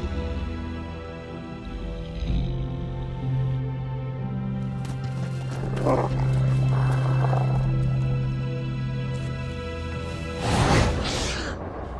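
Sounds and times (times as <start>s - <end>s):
dramatic background score drone: 0.0s - 11.9s
wolf growling: 1.3s - 9.3s.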